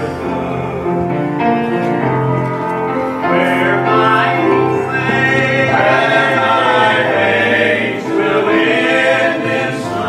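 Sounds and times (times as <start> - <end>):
male quartet singing hymn: 0.0 - 10.0
piano accompaniment: 0.0 - 10.0.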